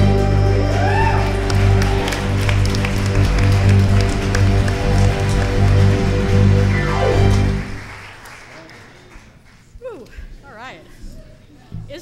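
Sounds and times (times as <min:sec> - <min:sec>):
electric guitar with keyboard: 0:04.2 - 0:07.9.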